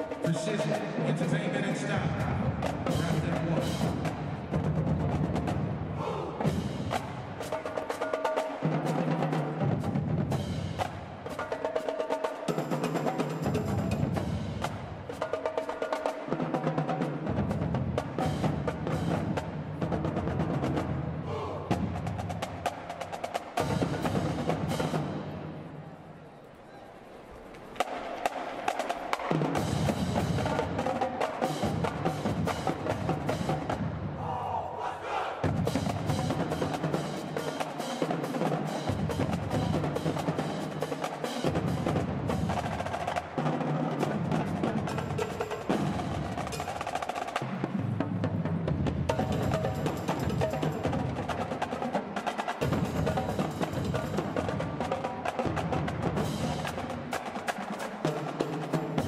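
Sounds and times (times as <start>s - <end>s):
snare drums: 0.0s - 25.6s, 27.3s - 34.4s, 35.0s - 59.0s
cymbals: 0.0s - 48.2s, 49.0s - 59.0s
tenor drums: 0.0s - 59.0s.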